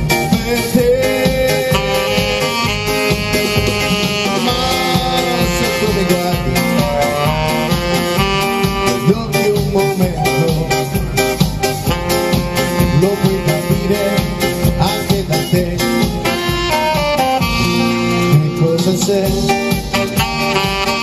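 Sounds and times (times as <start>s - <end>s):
keyboard: 0.0s - 21.0s
live band music: 0.0s - 21.0s
saxophone: 0.0s - 21.0s.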